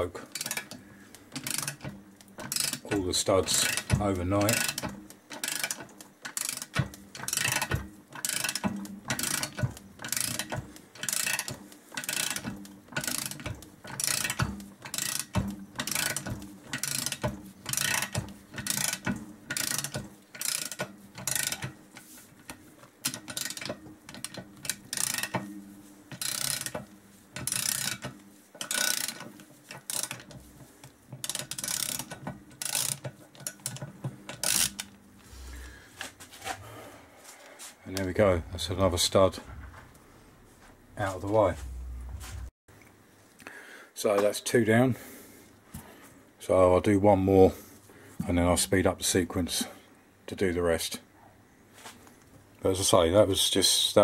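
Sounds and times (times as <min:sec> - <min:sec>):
ratchet pawl clicking: 0:00.3 - 0:22.1, 0:23.0 - 0:25.4, 0:26.1 - 0:30.4, 0:31.2 - 0:35.0.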